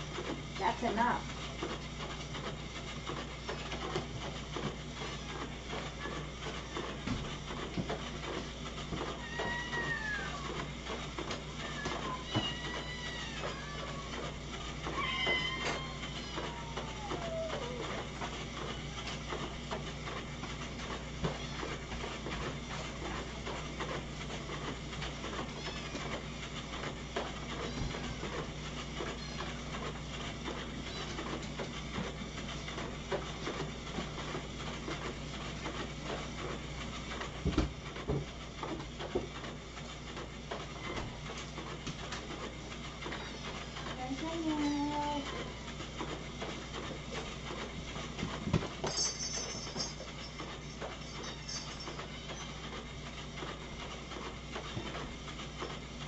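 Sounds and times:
cats meowing: 9.1s - 10.6s, 11.6s - 18.0s, 25.4s - 26.2s, 27.6s - 28.3s, 30.8s - 31.4s.

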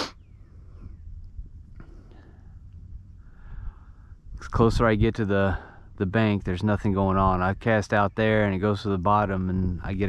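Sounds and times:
wind rumble on microphone: 0.1s - 10.0s.

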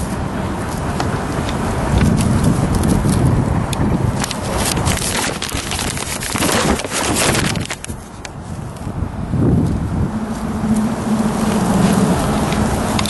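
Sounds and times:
paper handling rumble: 1.8s - 8.4s
paper crackling and rustling: 4.2s - 8.3s.

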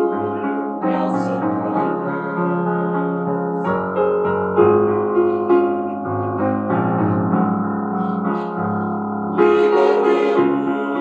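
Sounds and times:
piano playing hymn chords: 0.0s - 11.0s.

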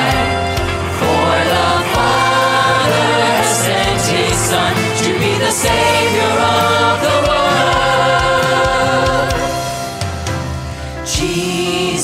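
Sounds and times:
group singing worship song: 0.0s - 10.3s, 11.0s - 12.0s
band with guitars and percussion: 0.0s - 12.0s.

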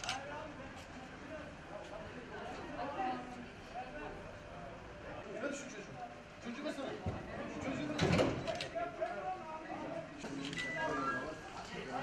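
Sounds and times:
men talking indistinctly: 3.8s - 12.0s.

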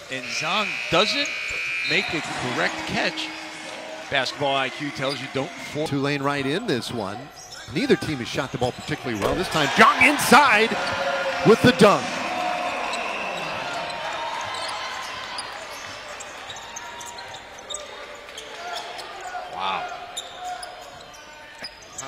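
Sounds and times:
arena crowd noise: 0.0s - 22.0s.

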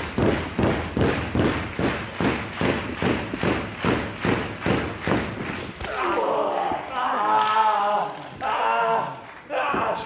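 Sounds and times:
crowd clapping in unison: 0.0s - 5.9s, 7.4s - 10.0s.

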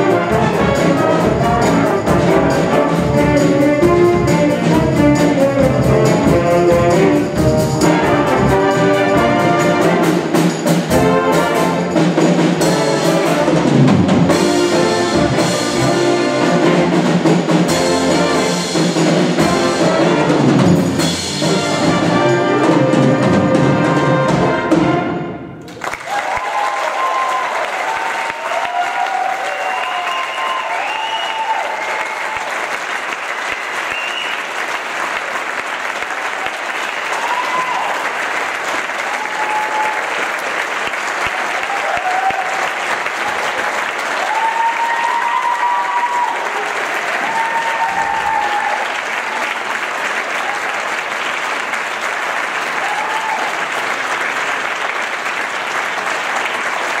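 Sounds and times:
audience applauding: 25.6s - 57.0s
whoops and cheers: 25.9s - 32.6s, 36.9s - 38.1s, 39.0s - 40.2s, 41.5s - 42.8s, 44.1s - 49.5s, 52.7s - 53.7s.

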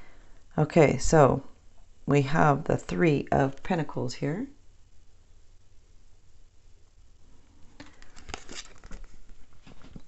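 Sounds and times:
faint low hum: 0.0s - 10.0s
cards rustling and clicking: 7.8s - 10.0s.

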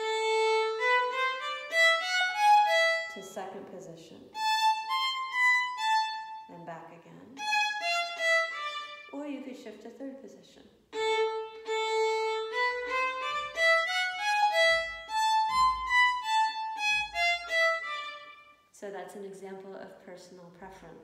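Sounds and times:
solo violin playing a scale: 0.0s - 3.4s, 4.3s - 6.5s, 7.4s - 9.1s, 10.9s - 18.7s.

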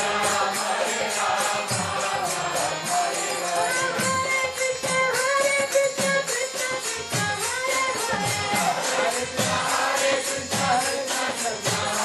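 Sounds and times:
voices chanting a mantra: 0.0s - 12.0s.

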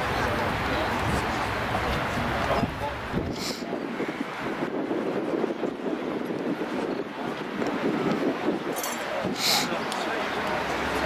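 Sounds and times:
distant indistinct voices: 0.0s - 11.0s
wind on microphone: 0.4s - 9.9s.

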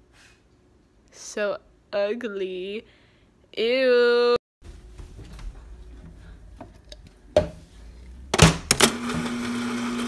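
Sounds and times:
water dispenser humming: 8.4s - 10.0s.

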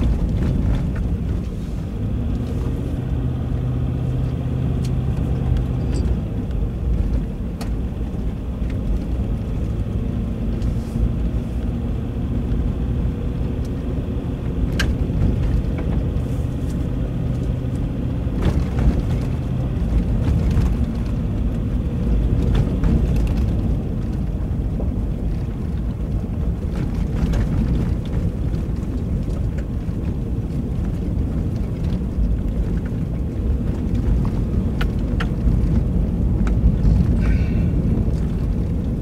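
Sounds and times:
tyres rumbling on dirt road: 0.0s - 39.0s
vehicle engine drone: 0.0s - 39.0s.

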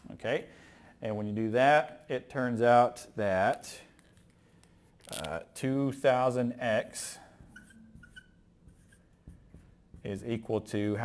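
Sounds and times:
marker writing on whiteboard: 6.9s - 10.9s
marker squeaks: 7.3s - 10.0s.

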